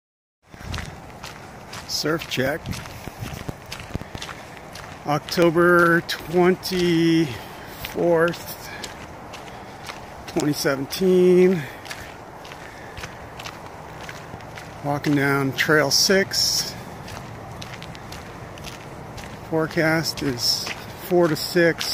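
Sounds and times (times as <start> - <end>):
footsteps on a dirt trail: 0.4 - 21.9.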